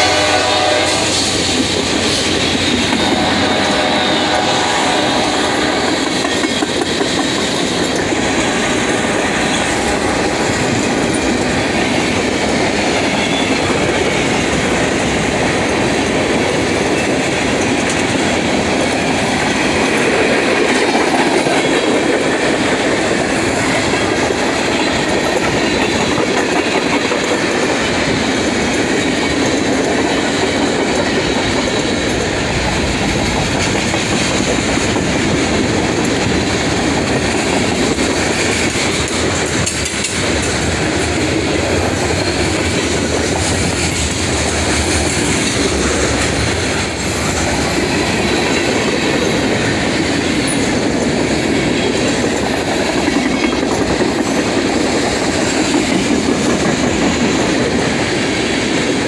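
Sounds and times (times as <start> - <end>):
freight train wheels rumbling on rails: 0.0 - 59.0.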